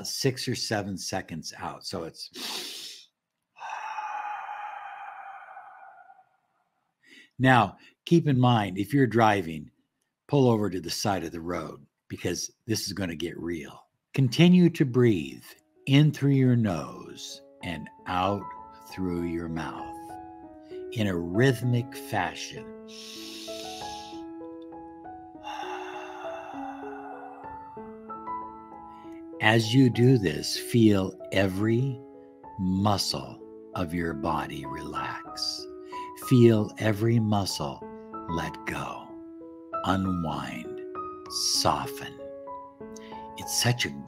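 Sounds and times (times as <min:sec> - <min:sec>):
breath hiss: 0:02.3 - 0:06.3, 0:22.9 - 0:24.3, 0:25.4 - 0:27.8
man exhaling through mouth: 0:02.4 - 0:06.4, 0:22.9 - 0:24.2, 0:25.4 - 0:27.8
slow keyboard music: 0:14.2 - 0:44.0.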